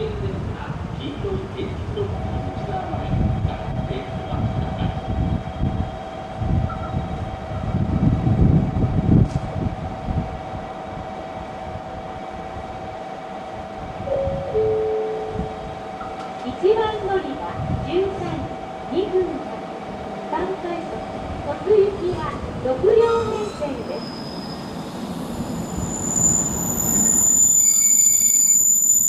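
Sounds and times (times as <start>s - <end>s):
train running gear rumble: 1.6s - 28.0s
brief lower tone: 6.6s - 7.7s, 14.1s - 16.3s.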